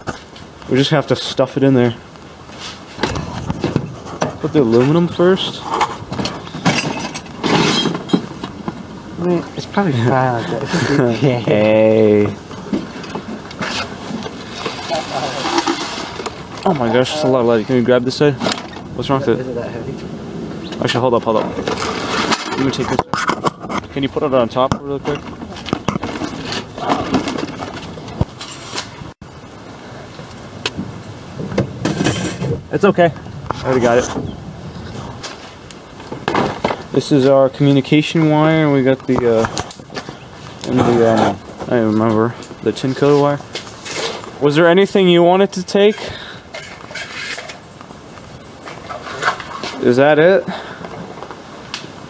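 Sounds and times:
scrap metal scraping: 2.5s - 8.5s, 12.5s - 18.8s, 21.4s - 24.1s, 25.1s - 29.0s, 31.8s - 32.6s, 43.0s - 44.4s, 45.7s - 50.1s
knocks and clatter of buckets: 2.9s - 19.3s, 20.6s - 29.2s, 30.6s - 51.5s.

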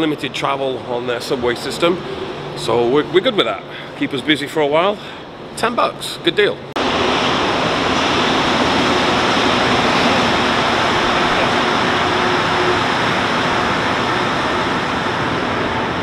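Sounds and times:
train rushing into station: 0.0s - 16.0s.

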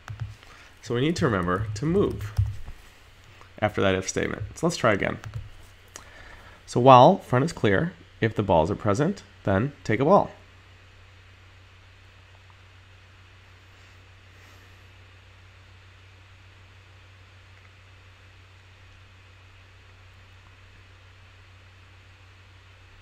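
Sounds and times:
faint low hum and hiss: 0.0s - 23.0s.

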